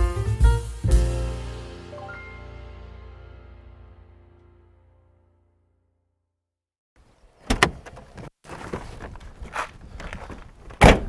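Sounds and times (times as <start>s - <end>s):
car door latch clicking: 7.4s - 8.0s
car door shutting thud: 7.4s - 8.0s, 10.8s - 11.0s.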